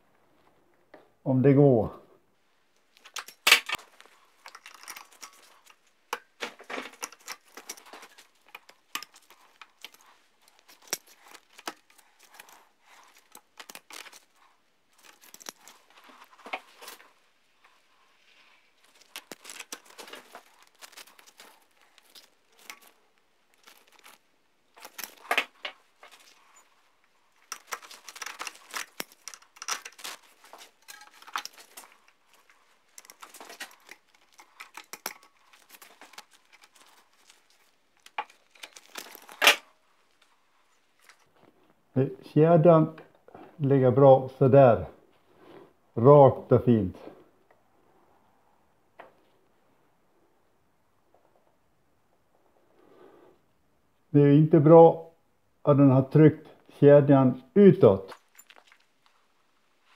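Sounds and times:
metal chain clicking and rattling: 0:02.9 - 0:17.1, 0:18.8 - 0:40.1, 0:58.1 - 0:58.8.

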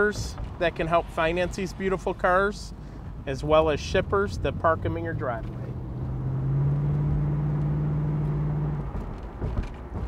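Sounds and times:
car engine accelerating: 0:04.0 - 0:10.0.

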